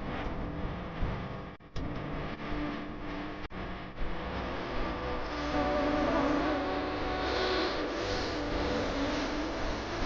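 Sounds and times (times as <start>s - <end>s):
wavering melody over hazy backing: 5.2s - 10.0s.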